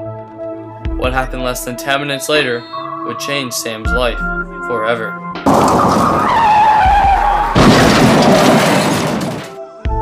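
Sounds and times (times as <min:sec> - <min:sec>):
car tyres screeching: 0:05.4 - 0:08.6
car crash with breaking glass: 0:05.4 - 0:09.6.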